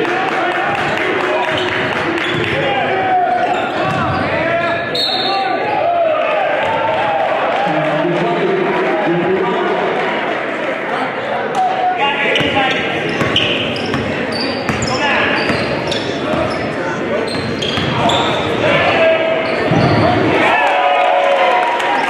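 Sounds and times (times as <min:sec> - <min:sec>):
crowd chatter echoing: 0:00.0 - 0:22.0
sneaker squeaks: 0:01.4 - 0:02.6, 0:03.4 - 0:05.6, 0:12.3 - 0:18.6, 0:19.4 - 0:20.2.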